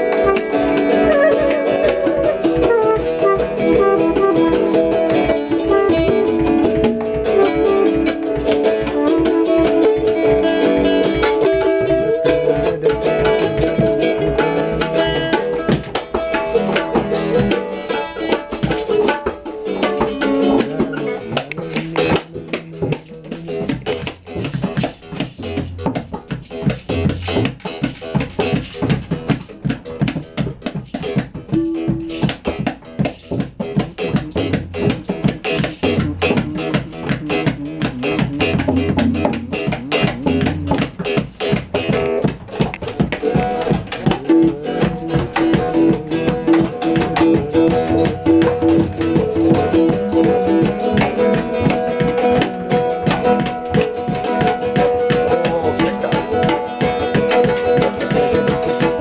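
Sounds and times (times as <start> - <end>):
acoustic guitar rapid picking: 0.0 - 59.0
tabla drums: 0.0 - 59.0.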